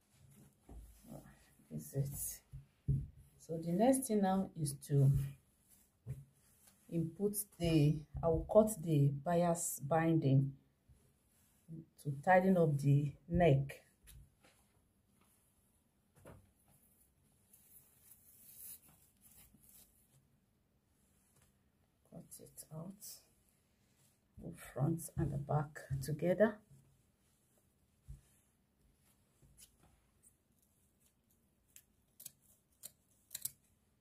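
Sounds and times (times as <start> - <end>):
fabric rustling: 5.2 - 7.1, 14.0 - 22.0, 26.7 - 31.6.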